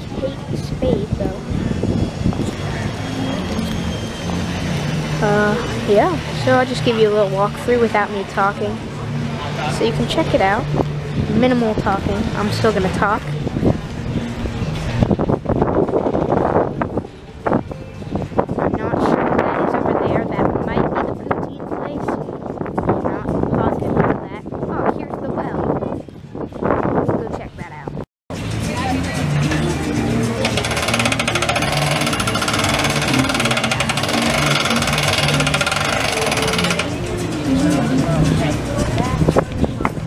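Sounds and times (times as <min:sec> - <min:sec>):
wind on microphone: 0:00.0 - 0:28.0, 0:33.4 - 0:40.0
background music: 0:27.0 - 0:40.0
crank wheel rattling ticks: 0:30.4 - 0:36.9.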